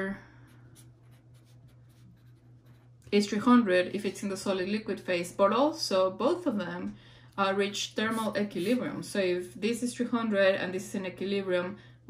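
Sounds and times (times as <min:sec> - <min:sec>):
marker writing on paper: 0:00.7 - 0:03.0, 0:08.1 - 0:08.9.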